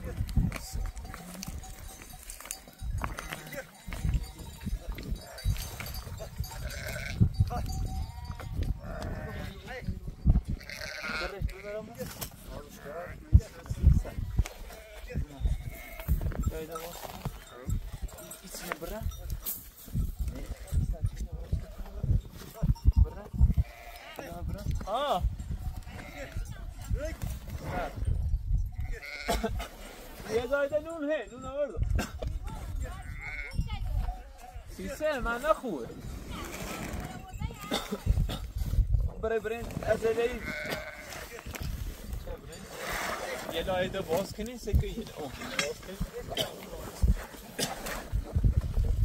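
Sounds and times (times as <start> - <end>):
sheep and goats bleating: 0.0 - 17.5, 23.3 - 24.6, 25.5 - 26.8, 27.5 - 30.4, 32.4 - 35.2, 39.8 - 41.6.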